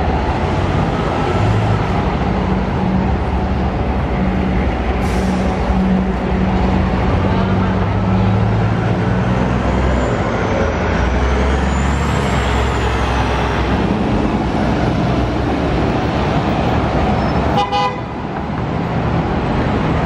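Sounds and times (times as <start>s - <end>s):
buses driving past: 0.0s - 20.0s.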